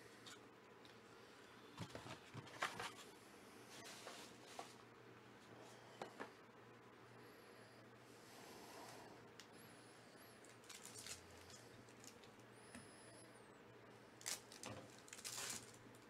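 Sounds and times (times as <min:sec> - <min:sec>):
foil pack crinkling and tearing: 0:10.4 - 0:12.3, 0:14.2 - 0:16.0.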